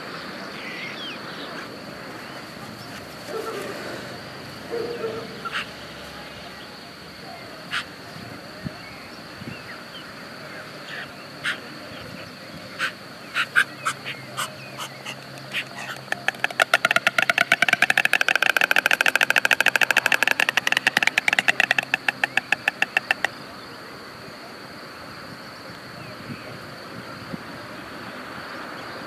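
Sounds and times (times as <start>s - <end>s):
stork bill clattering: 13.4s - 23.4s.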